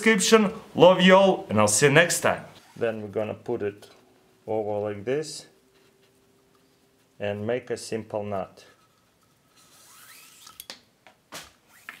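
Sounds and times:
cord sliding through fingers: 9.5 - 10.6.

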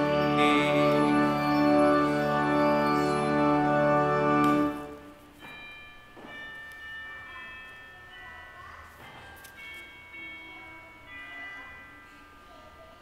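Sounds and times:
church organ soft high notes: 0.0 - 5.5.

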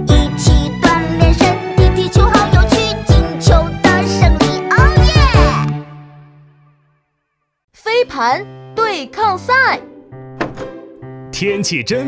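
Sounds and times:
cheerful cartoon music: 0.0 - 12.0
cartoon voice calling out: 4.7 - 5.6
door bumping open thunk: 10.3 - 10.8.

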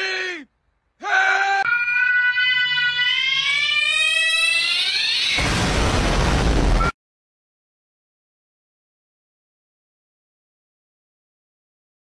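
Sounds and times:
young man shouting: 0.0 - 1.7
long shrill scream: 2.5 - 5.6
burst of harsh noise: 5.3 - 7.0.

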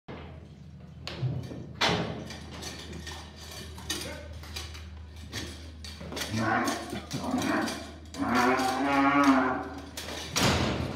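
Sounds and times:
bull bellowing: 6.2 - 10.0.

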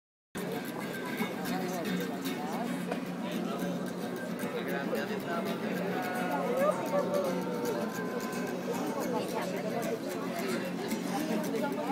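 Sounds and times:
chatter of voices: 0.4 - 11.9
music: 0.4 - 11.9.

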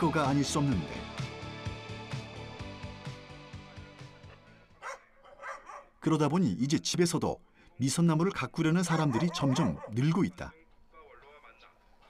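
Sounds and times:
background music: 0.0 - 10.4
dog barking: 4.8 - 6.0, 8.8 - 10.2.

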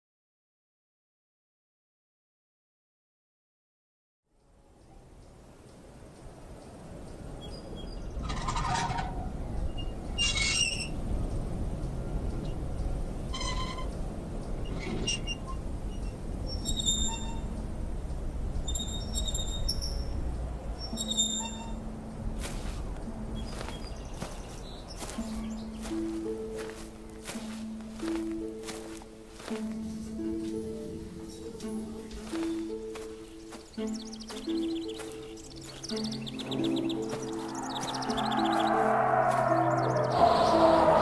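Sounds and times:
bird-like calls and chirps: 4.6 - 41.0
low held notes: 15.4 - 41.0
higher notes: 20.1 - 41.0
low rumbling drone: 35.3 - 41.0.

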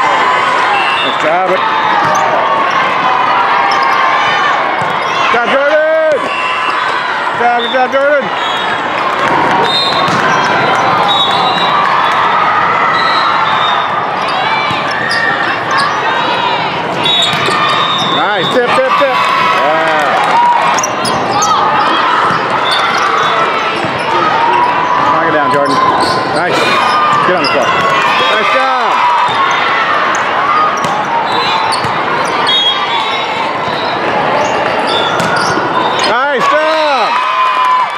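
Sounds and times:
many overlapping voices: 0.0 - 37.1
volleyball hits: 1.2 - 3.0, 4.7 - 5.1, 8.6 - 12.9, 13.9 - 15.8, 16.7 - 24.8, 26.6 - 36.1
sneakers squeaking on court floor: 2.0 - 2.4, 9.6 - 12.2, 12.9 - 16.1, 16.9 - 18.6, 20.7 - 28.6, 29.2 - 36.1
volleyballs being hit: 9.1 - 11.0.

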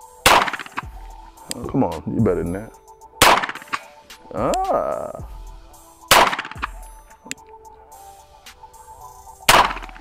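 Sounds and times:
pistol shots with ringing tail: 0.2 - 1.0, 3.2 - 4.0, 6.1 - 6.9, 9.5 - 10.0.

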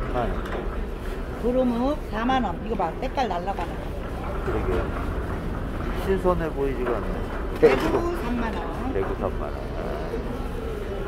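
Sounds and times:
faint indistinct voices: 0.0 - 11.0
low market rumble: 0.0 - 11.0.

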